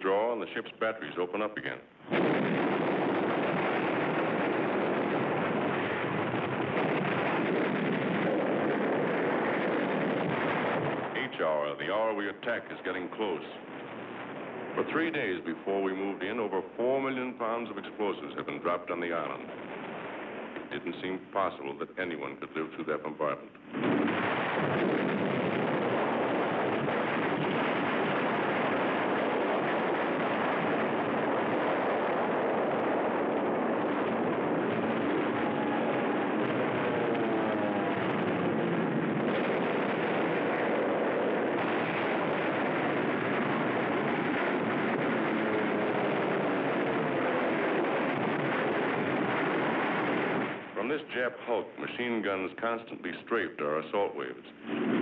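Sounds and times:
battle bombardment roar: 2.1 - 11.5, 23.7 - 50.8.

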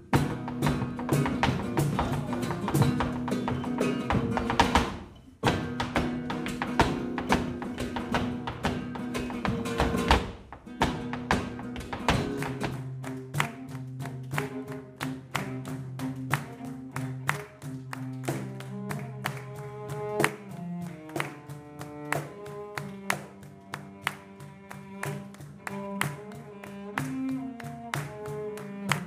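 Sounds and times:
cajon strikes: 0.0 - 29.0
cello bowing slow melody: 13.0 - 29.0.

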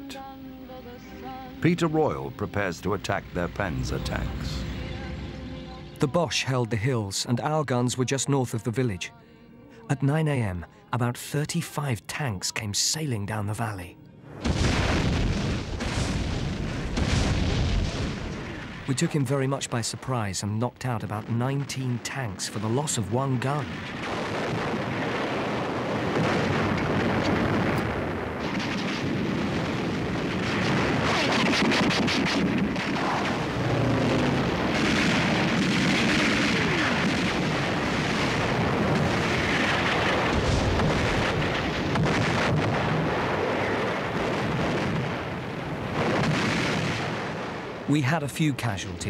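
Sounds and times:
artillery fire and explosions: 1.6 - 5.7, 14.3 - 48.0
rapid gunfire: 28.4 - 43.0.

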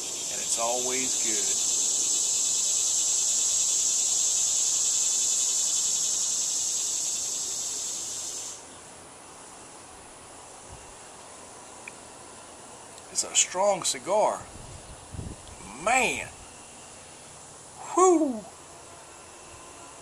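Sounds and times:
faint outdoor background noise: 0.0 - 20.0
insect high-pitched pulsing buzz: 0.0 - 20.0.

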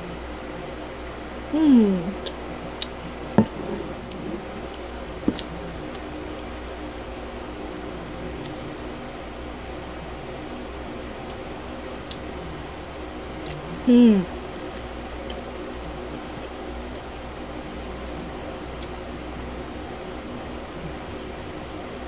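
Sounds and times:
steady low hum: 0.0 - 22.0
quiet chewing: 2.2 - 6.1.

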